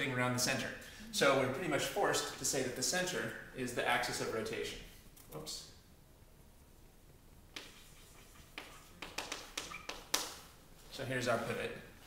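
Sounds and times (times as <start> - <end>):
chalk tapping on chalkboard: 7.5 - 10.4.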